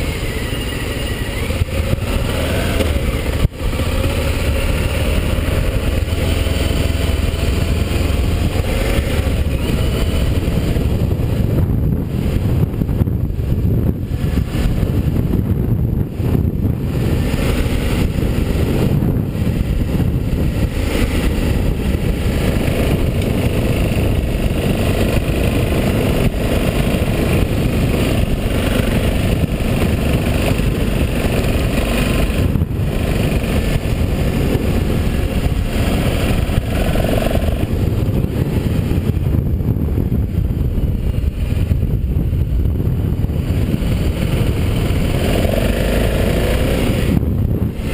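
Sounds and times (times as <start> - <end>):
motorcycle engine running: 0.0 - 47.9
wind rumble on microphone: 0.0 - 47.9.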